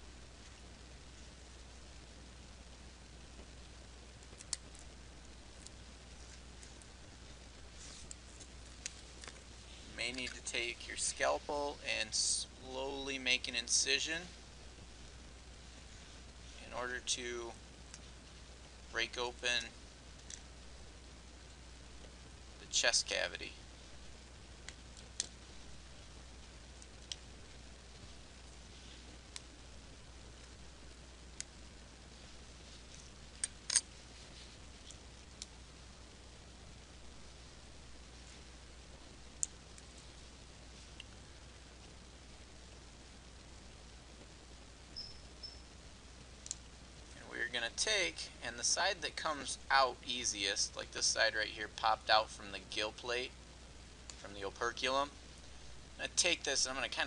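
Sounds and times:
low steady hum: 0.0s - 57.0s.

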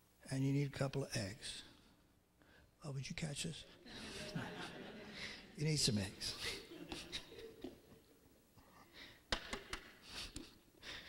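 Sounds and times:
soft breaths: 10.0s - 11.0s.

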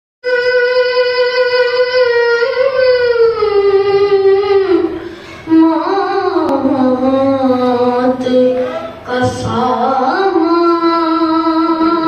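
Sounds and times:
boy chanting through microphone: 0.2s - 12.0s.

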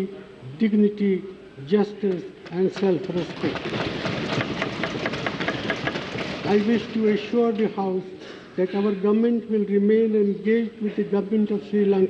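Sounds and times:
people thumping desks in applause: 2.7s - 7.0s.

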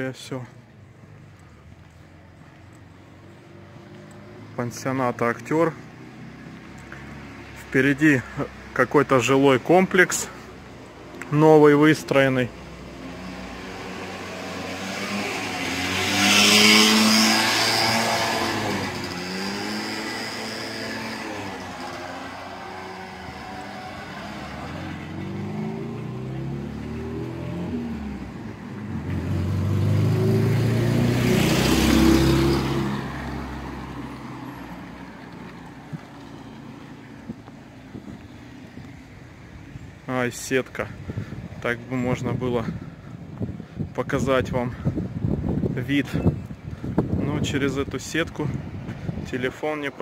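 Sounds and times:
vehicles driving past: 0.0s - 50.0s.

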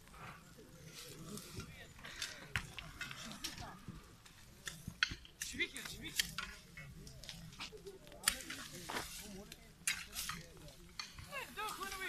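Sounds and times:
dry reeds crackling and rustling: 0.0s - 12.0s.

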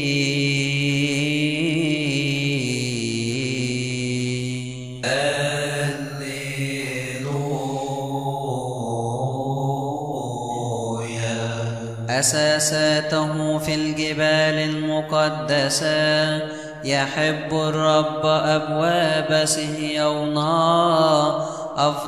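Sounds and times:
man chanting liturgical recitation: 0.0s - 22.0s.

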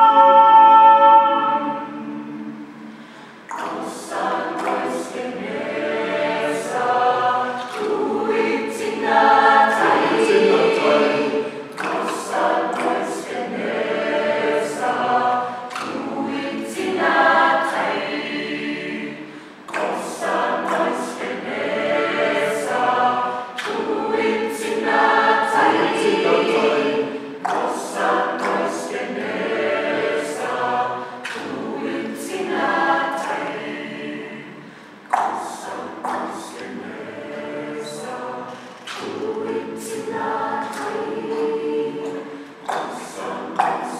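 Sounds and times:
mixed choir singing unaccompanied: 0.0s - 43.9s.

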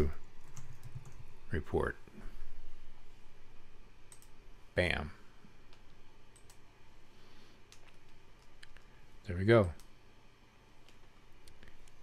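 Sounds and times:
low room hum: 0.0s - 12.0s
computer mouse clicks: 4.1s - 4.3s, 5.7s - 6.6s, 7.7s - 8.9s, 10.8s - 12.0s.

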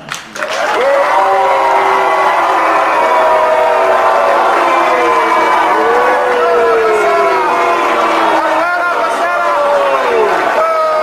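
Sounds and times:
crowd cheering and applauding: 0.1s - 11.0s
voices shouting: 0.8s - 11.0s.

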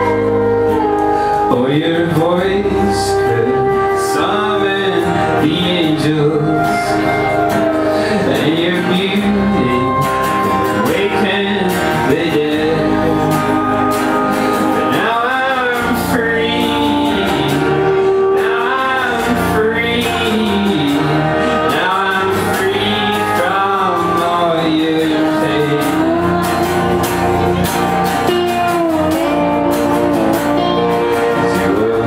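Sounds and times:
accompanying instruments: 0.0s - 32.0s
man singing: 0.0s - 32.0s
strummed acoustic guitar: 0.0s - 32.0s.

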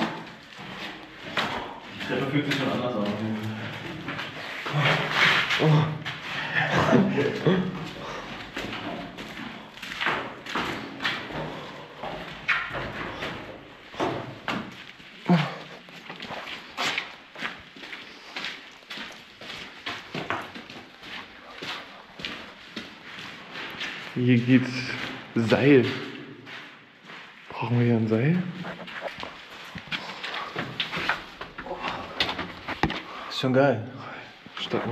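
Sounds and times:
footsteps on gritty concrete: 7.3s - 33.2s.

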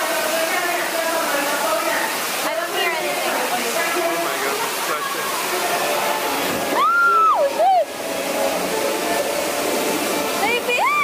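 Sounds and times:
steady rushing noise: 1.7s - 11.0s.

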